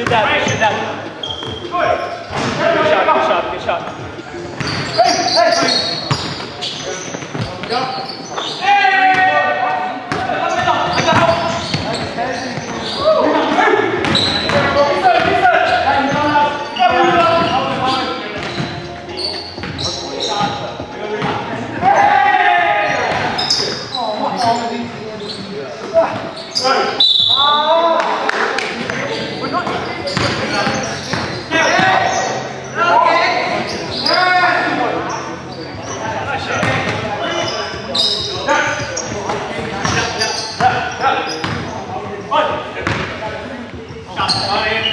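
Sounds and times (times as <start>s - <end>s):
players' voices and calls: 0.0s - 44.9s.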